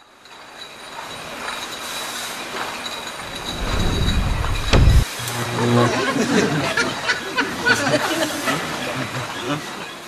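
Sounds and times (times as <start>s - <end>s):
noisy rising whoosh: 3.2s - 5.0s
deep rumble: 3.3s - 5.1s.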